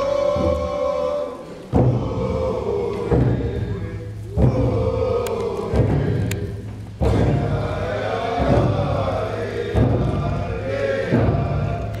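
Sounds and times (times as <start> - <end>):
group chanting a song: 0.0 - 12.0.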